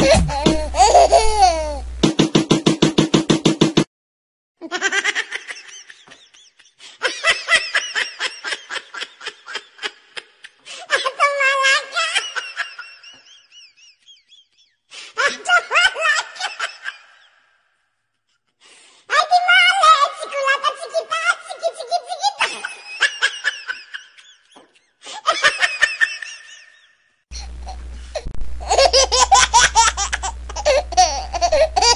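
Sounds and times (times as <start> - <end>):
baby laughing: 0.0 - 1.8, 20.4 - 26.8, 28.6 - 31.9.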